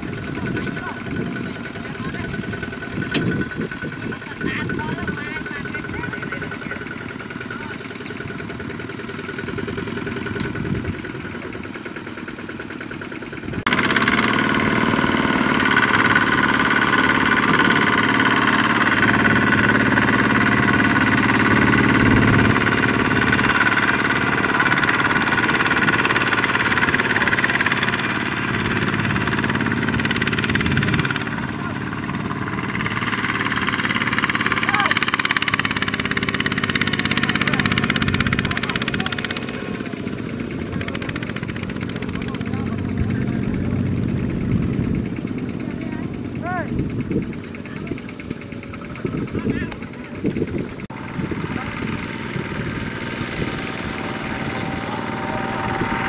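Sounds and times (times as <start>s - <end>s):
diesel tractor engine straining: 0.0s - 56.0s.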